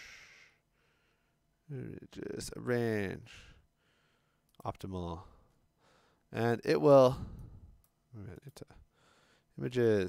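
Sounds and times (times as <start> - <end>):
man talking: 1.7 - 3.5, 4.6 - 5.4, 6.3 - 7.3, 8.1 - 8.8, 9.6 - 10.0.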